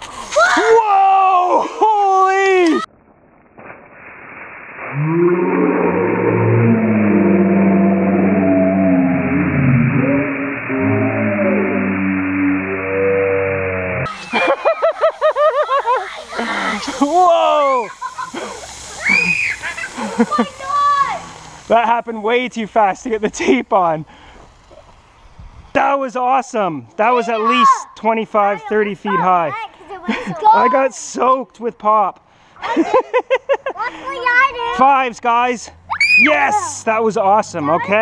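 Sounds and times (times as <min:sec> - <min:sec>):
children shrieking and yelling: 0:00.3 - 0:02.9, 0:15.7 - 0:21.4, 0:27.1 - 0:28.0, 0:35.9 - 0:36.6.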